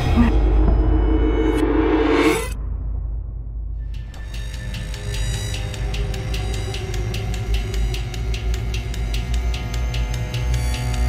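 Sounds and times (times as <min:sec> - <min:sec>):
dark suspenseful music: 0:00.0 - 0:11.0
steady ticking beat: 0:03.8 - 0:11.0.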